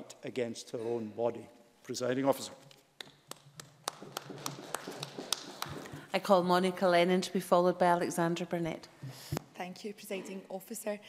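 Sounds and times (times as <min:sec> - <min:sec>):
sparse hand clapping: 0:03.0 - 0:06.0.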